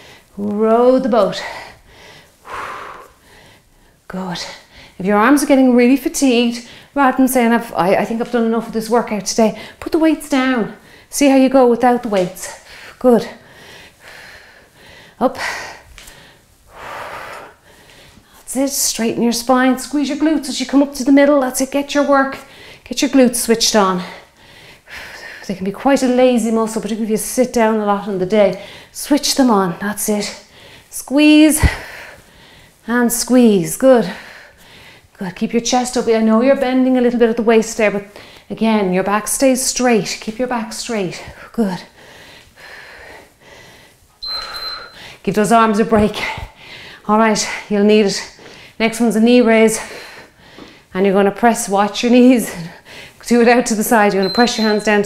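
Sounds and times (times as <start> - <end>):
woman breathing heavily: 0.0 - 0.4, 1.4 - 5.0, 6.6 - 7.0, 9.6 - 9.8, 10.8 - 11.1, 12.6 - 18.4, 22.4 - 22.9, 24.0 - 25.5, 28.6 - 29.0, 30.4 - 31.0, 31.6 - 32.9, 34.0 - 35.2, 38.1 - 38.5, 41.2 - 45.2, 46.3 - 47.7, 48.3 - 48.8, 49.7 - 50.9, 52.6 - 53.2.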